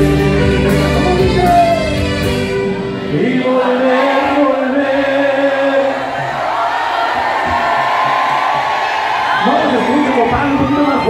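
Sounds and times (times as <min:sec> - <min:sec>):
live band with saxophones: 0:00.0 - 0:03.2
crowd voices: 0:00.4 - 0:11.0.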